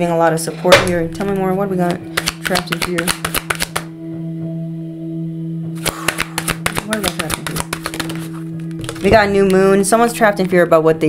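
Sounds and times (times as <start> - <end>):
low background music hum: 0.0 - 11.0
cards being shuffled: 2.0 - 3.9, 5.8 - 9.7.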